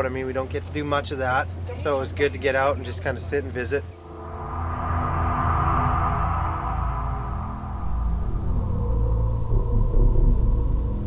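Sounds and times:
deep low rumble: 0:04.0 - 0:11.0.

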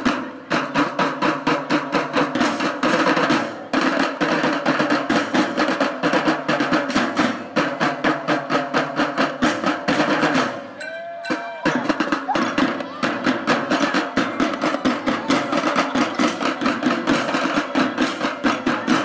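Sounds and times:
marching drum band: 0:00.0 - 0:19.0.

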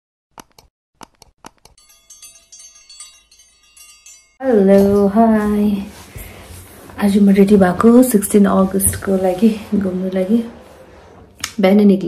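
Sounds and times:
high ringing chime tones: 0:01.8 - 0:05.5.

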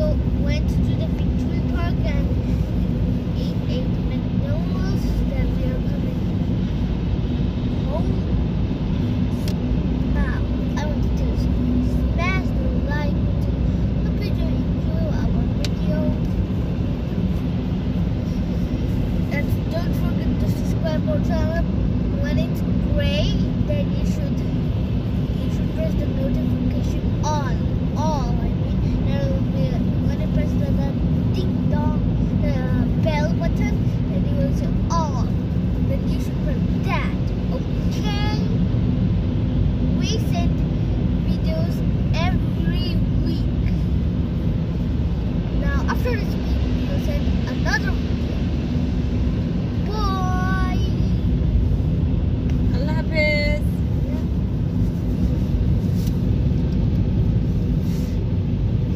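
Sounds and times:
voices: 0:00.0 - 0:06.6, 0:07.7 - 0:08.6, 0:09.2 - 0:17.3, 0:19.3 - 0:24.6, 0:25.2 - 0:38.6, 0:39.8 - 0:43.8, 0:45.5 - 0:48.5, 0:49.7 - 0:51.4, 0:52.5 - 0:54.4
car rumble inside cabin: 0:00.0 - 0:58.9.

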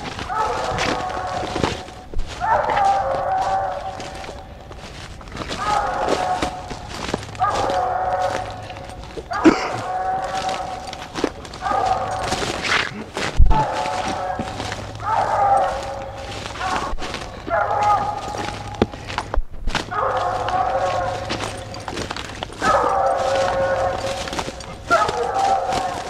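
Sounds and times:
dog barking: 0:00.0 - 0:04.4, 0:05.5 - 0:12.8, 0:13.5 - 0:18.8, 0:19.8 - 0:26.0
hound bawling: 0:00.0 - 0:04.5, 0:05.3 - 0:19.1, 0:19.9 - 0:26.0
dog baying: 0:00.0 - 0:19.2, 0:19.8 - 0:26.0.

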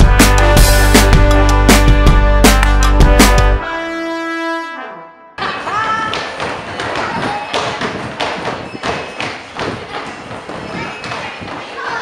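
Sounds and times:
children's feet stamping on floor: 0:05.4 - 0:12.0.

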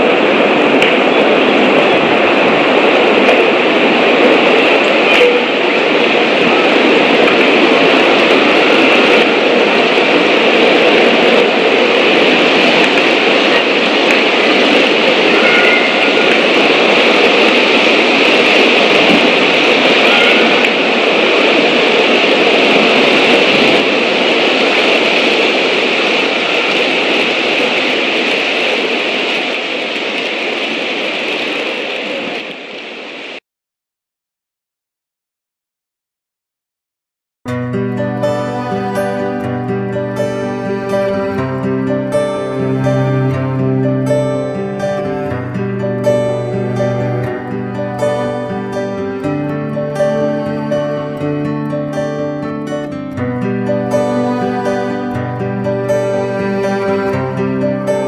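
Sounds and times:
loud steady rushing noise: 0:00.0 - 0:33.4, 0:37.7 - 0:58.0.

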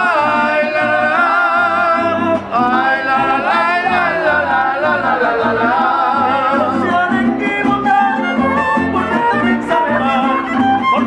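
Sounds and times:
man singing with vibrato: 0:00.0 - 0:11.0
strummed guitar: 0:00.0 - 0:11.0.

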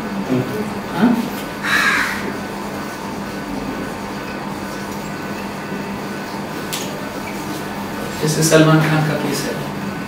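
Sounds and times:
crow cawing: 0:01.6 - 0:02.4.

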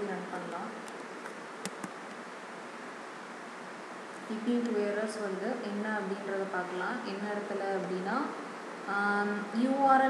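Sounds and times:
steady background hiss: 0:00.0 - 0:10.0
computer keyboard key clicks: 0:01.6 - 0:02.0.

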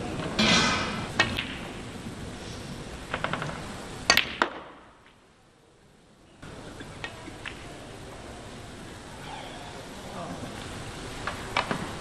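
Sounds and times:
cue tip hitting ball: 0:00.3 - 0:01.9, 0:03.1 - 0:04.9
snooker balls clicking: 0:01.1 - 0:01.9, 0:03.0 - 0:05.2, 0:06.8 - 0:07.8.

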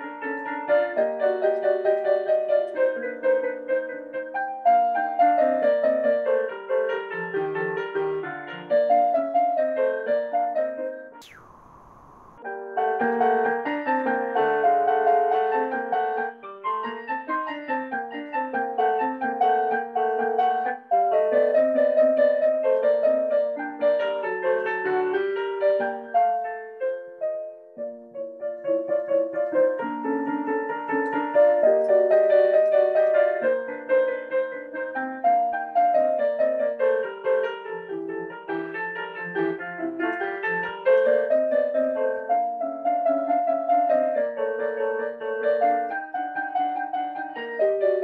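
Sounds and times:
falling whistle-like sweep: 0:11.2 - 0:12.7
acoustic piano playing: 0:14.2 - 0:48.0.

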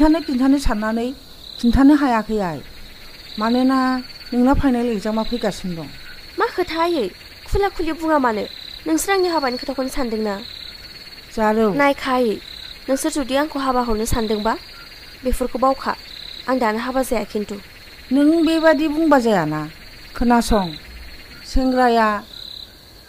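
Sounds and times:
crickets chirping: 0:00.0 - 0:23.0
frogs calling: 0:00.0 - 0:23.0.

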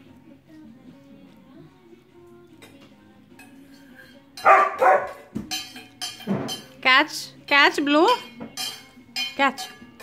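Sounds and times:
dog barking: 0:04.4 - 0:05.3.

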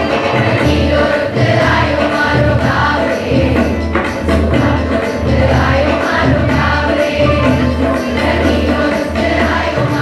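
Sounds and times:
choir singing folk song: 0:00.0 - 0:10.0
low rhythmic pulse: 0:00.0 - 0:10.0.

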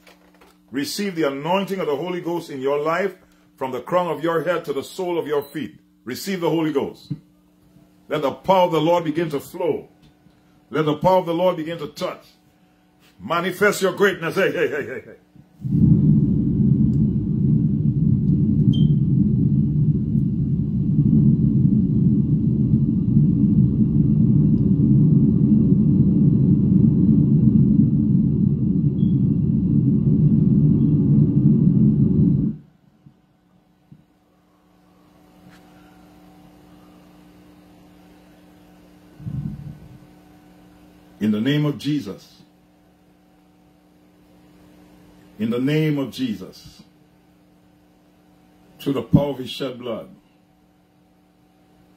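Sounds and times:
faint steady hum: 0:00.0 - 0:51.9
hand rubbing phone microphone: 0:39.2 - 0:40.1.

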